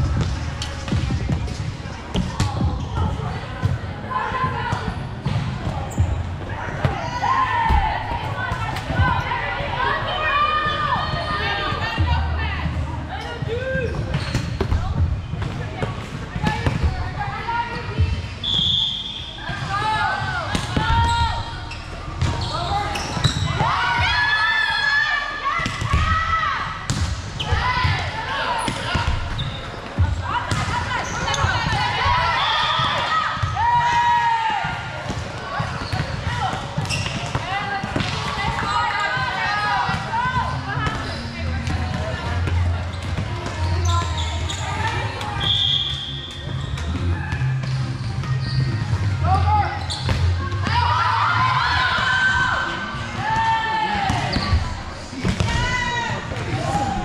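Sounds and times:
players calling and shouting: 0.0s - 57.0s.

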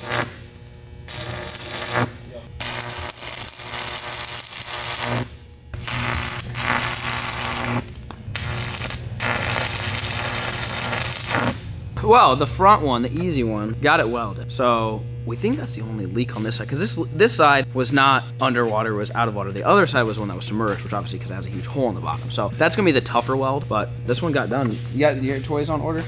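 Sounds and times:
steady low hum: 0.0s - 26.0s
welding arc crackling: 0.0s - 26.0s.

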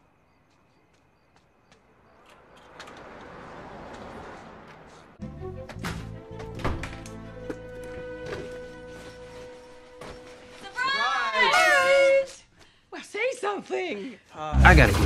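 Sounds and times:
car driving past: 2.0s - 5.3s
music: 5.2s - 10.6s.

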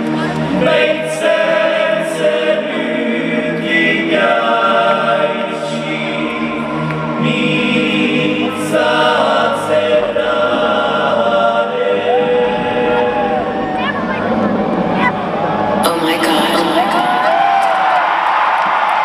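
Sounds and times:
choir chanting held notes: 0.0s - 18.8s.

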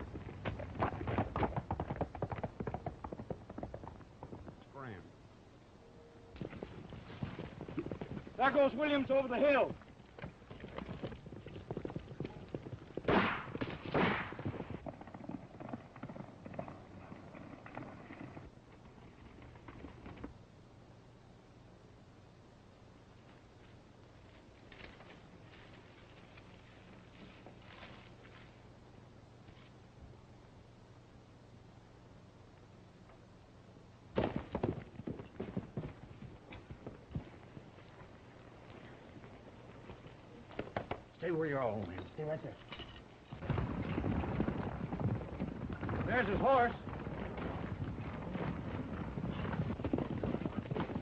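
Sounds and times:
horses galloping: 0.0s - 5.2s, 6.2s - 20.5s, 23.0s - 29.8s, 34.2s - 51.0s
gunshots: 13.1s - 14.4s.

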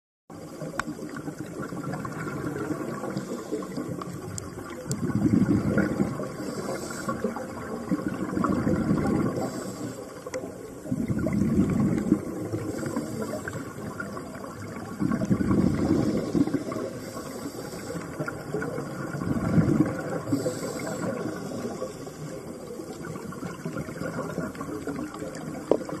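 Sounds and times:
exhaled bubbles rumbling: 0.3s - 26.0s
regulator inhalation hiss: 3.0s - 4.2s, 6.2s - 7.4s, 9.3s - 10.3s, 12.5s - 13.9s, 15.9s - 18.4s, 20.2s - 22.5s.

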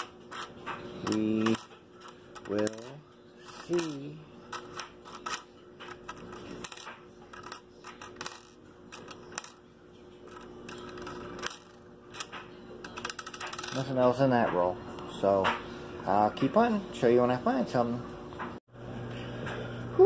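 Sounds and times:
coins clinking on wooden table: 0.0s - 9.6s, 10.3s - 13.9s.

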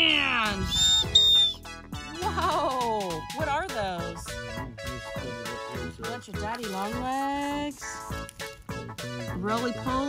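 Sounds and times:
background music: 0.0s - 10.0s
high-pitched whistle blasts: 0.6s - 1.7s.

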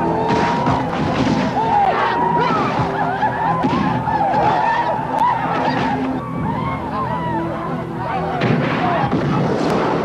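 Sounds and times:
gunfire: 0.3s - 1.6s, 8.4s - 10.0s
men shouting: 1.5s - 7.4s.

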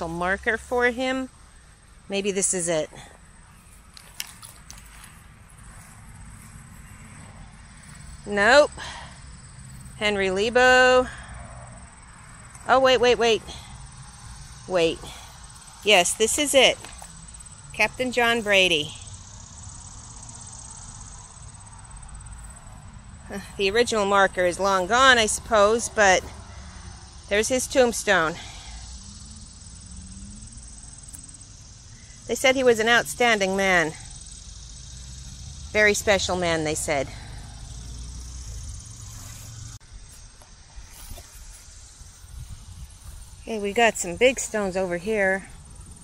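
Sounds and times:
insects trilling: 0.0s - 46.0s.

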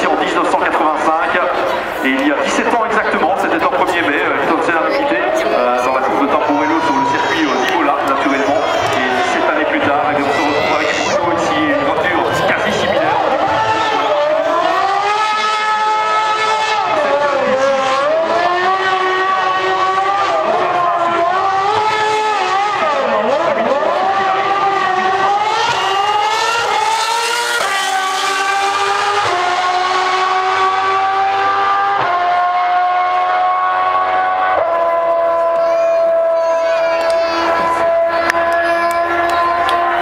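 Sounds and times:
racing car accelerating through gears: 0.0s - 36.4s, 37.0s - 40.0s
racing car engine revving: 0.0s - 40.0s.

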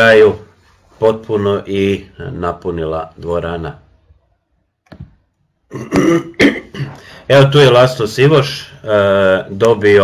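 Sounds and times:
man clearing his throat: 5.7s - 7.0s.

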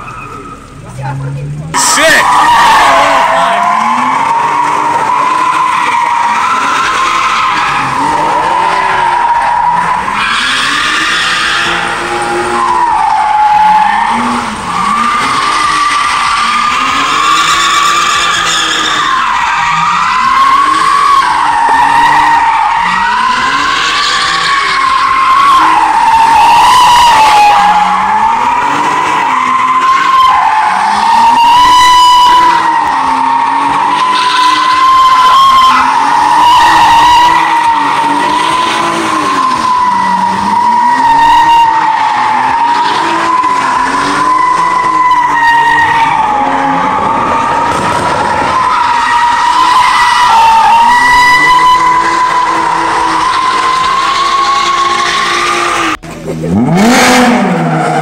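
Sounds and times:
car engine revving: 0.0s - 58.0s
tyres screeching: 0.0s - 58.0s.

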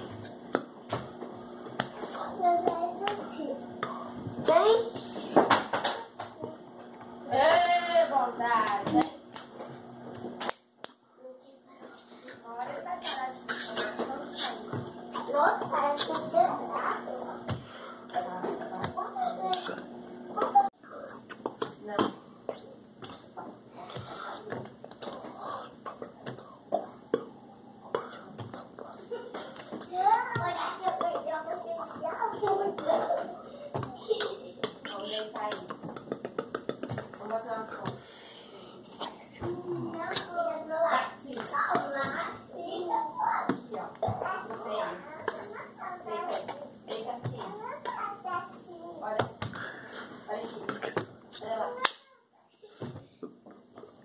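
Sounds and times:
hands clapping and slapping: 8.6s - 11.0s, 33.8s - 38.0s, 50.6s - 52.0s
person making wordless vocal sounds: 13.0s - 17.6s, 24.0s - 29.4s, 34.0s - 37.1s.

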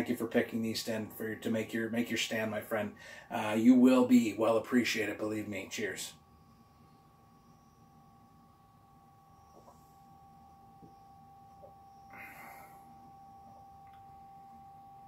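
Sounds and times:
soft breath: 3.0s - 3.3s, 12.0s - 13.0s
faint high-pitched tone: 3.3s - 15.0s.

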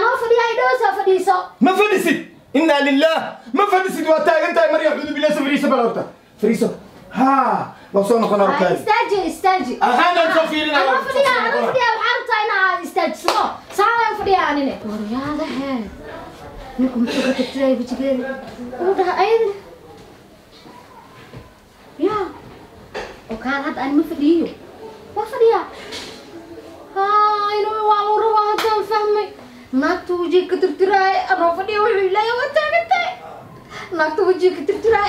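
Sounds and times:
woman speaking: 10.8s - 16.0s
hand claps: 13.2s - 13.5s, 28.6s - 28.8s.

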